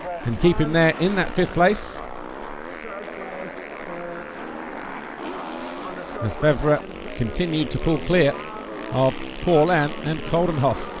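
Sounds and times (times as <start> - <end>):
motocross bike engine revving: 0.0 - 11.0.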